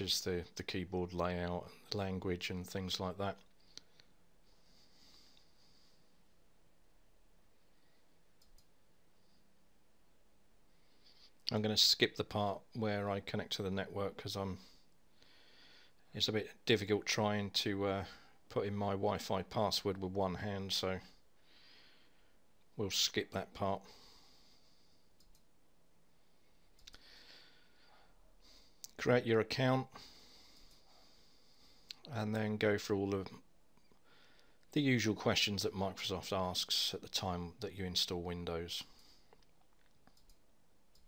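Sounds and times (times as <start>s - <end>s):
faint clicks: 8.4s - 8.8s, 25.2s - 25.5s, 26.7s - 27.1s, 38.9s - 41.0s.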